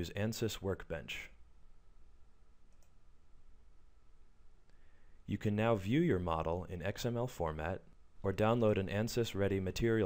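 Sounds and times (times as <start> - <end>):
faint room hum: 0.0 - 10.0
computer mouse click: 2.7 - 3.0.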